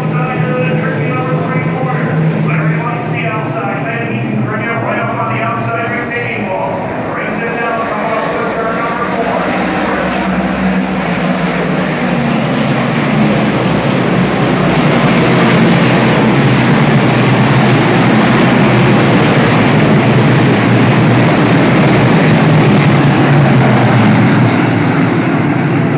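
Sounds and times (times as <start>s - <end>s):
race car engines roaring: 0.0s - 25.9s.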